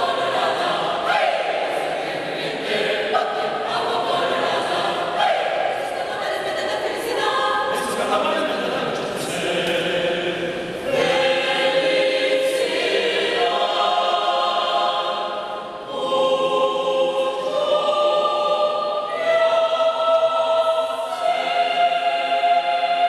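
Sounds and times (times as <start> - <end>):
mixed choir singing: 0.0 - 23.0.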